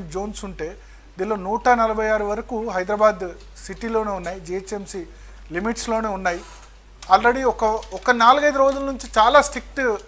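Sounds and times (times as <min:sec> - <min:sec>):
person talking: 0:00.0 - 0:10.0.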